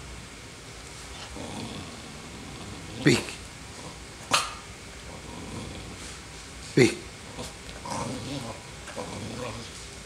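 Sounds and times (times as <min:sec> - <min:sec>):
dog barking: 0:04.3 - 0:04.6.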